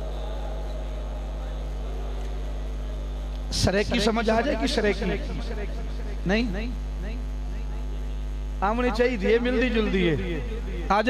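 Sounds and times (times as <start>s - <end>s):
electrical mains hum: 0.0s - 11.0s
man speaking: 3.5s - 7.2s, 8.6s - 11.0s.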